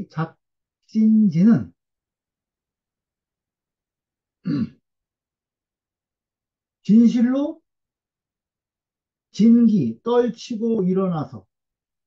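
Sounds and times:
man clearing his throat: 0:04.4 - 0:04.8.

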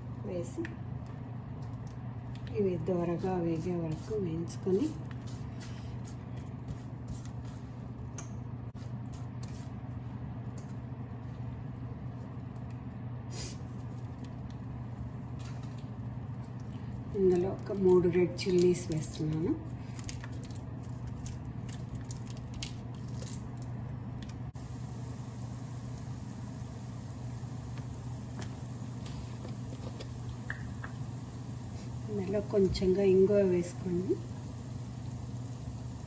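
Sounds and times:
steady low hum: 0:00.0 - 0:36.0
seeds sizzling in hot oil: 0:24.6 - 0:36.0.

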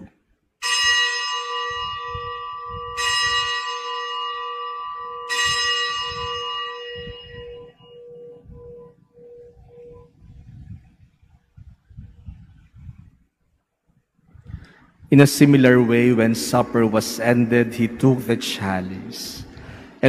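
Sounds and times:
bell ringing: 0:00.6 - 0:10.1.

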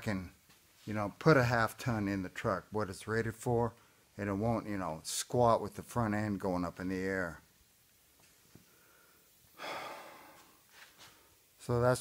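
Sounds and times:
man breathing in: 0:08.6 - 0:10.7.

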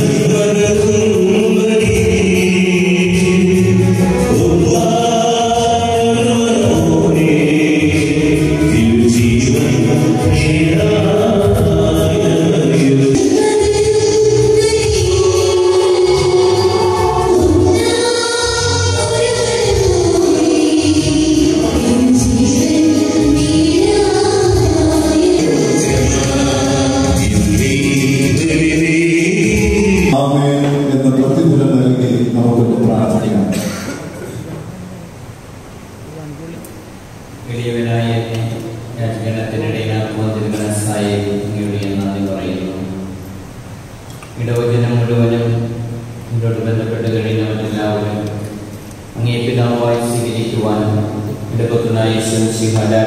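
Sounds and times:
church choir singing a hymn: 0:00.0 - 0:34.4.

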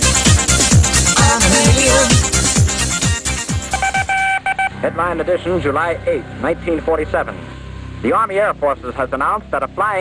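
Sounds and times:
electronic music with bass drum: 0:00.0 - 0:04.7
electronic beep tone: 0:03.6 - 0:04.9.

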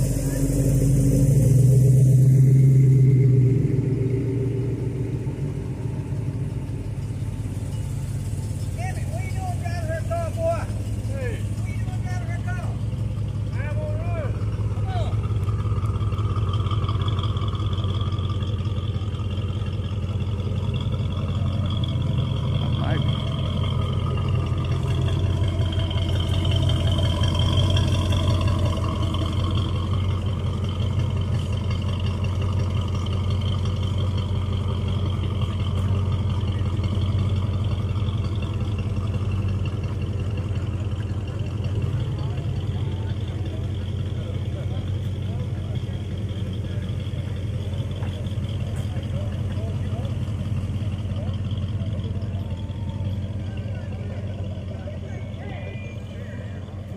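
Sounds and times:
car engine idling: 0:00.0 - 0:56.9.

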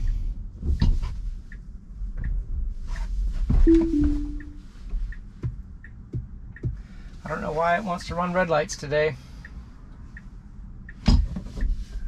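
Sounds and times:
turn signal ticking: 0:00.0 - 0:03.1, 0:03.7 - 0:12.0
two-note chime: 0:03.7 - 0:04.6.

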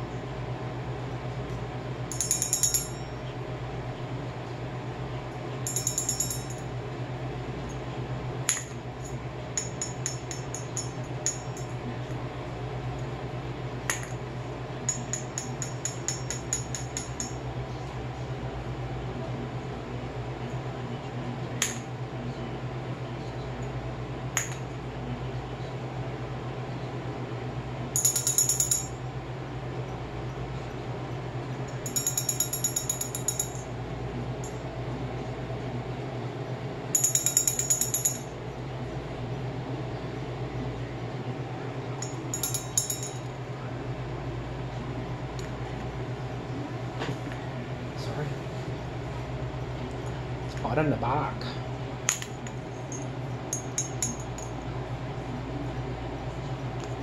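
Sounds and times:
steady low hum: 0:00.0 - 0:57.0
metal bell clinking: 0:02.1 - 0:03.2, 0:05.7 - 0:06.6, 0:28.0 - 0:28.9, 0:31.7 - 0:33.6, 0:37.0 - 0:38.3, 0:42.0 - 0:43.3.

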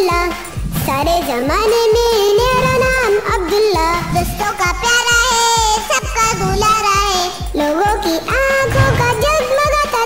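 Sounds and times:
child singing: 0:00.0 - 0:10.0.

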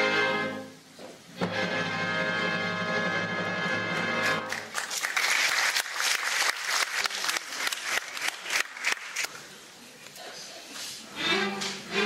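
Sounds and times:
audience applauding: 0:04.2 - 0:09.4.

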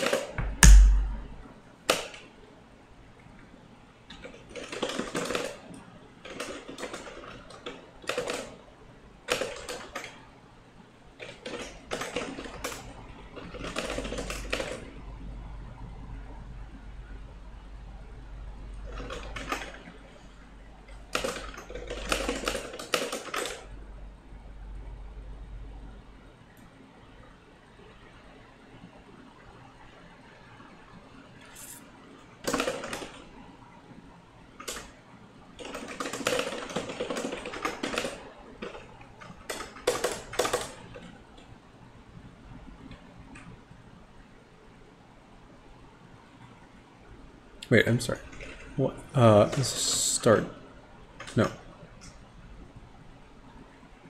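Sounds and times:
computer keyboard typing: 0:09.3 - 0:10.1, 0:13.5 - 0:14.8, 0:18.9 - 0:19.8, 0:21.1 - 0:23.6, 0:32.4 - 0:33.2, 0:35.6 - 0:38.8, 0:39.4 - 0:41.0.

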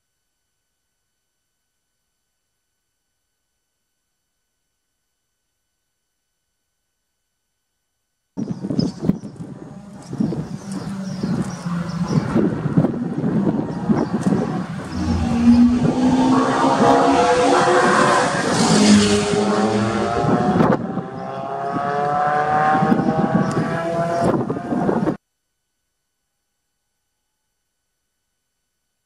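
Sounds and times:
sports car engine revving: 0:09.6 - 0:25.1.

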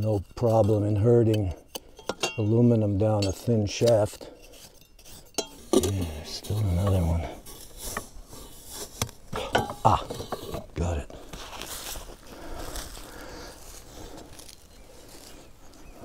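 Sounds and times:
knocks and metallic clinks: 0:00.1 - 0:07.2, 0:09.3 - 0:10.6
sand and soil scraping rustle: 0:02.7 - 0:09.3, 0:10.3 - 0:16.0.

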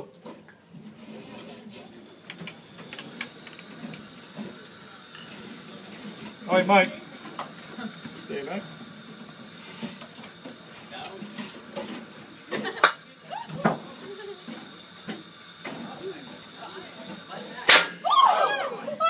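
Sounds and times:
sodium fizzing on water: 0:01.9 - 0:18.0
voices exclaiming: 0:13.2 - 0:14.4, 0:18.0 - 0:19.0
sharp loud bang: 0:17.7 - 0:18.0.

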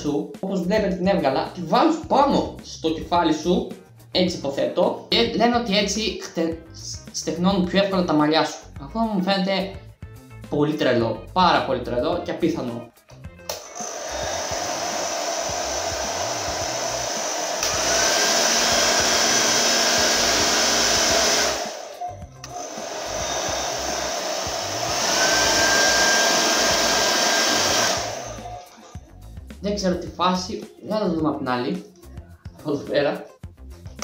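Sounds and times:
hair dryer running: 0:13.5 - 0:29.0.

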